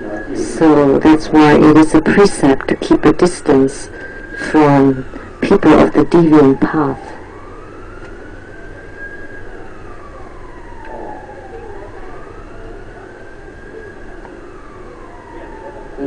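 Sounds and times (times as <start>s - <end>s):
siren wailing: 0.0s - 16.0s.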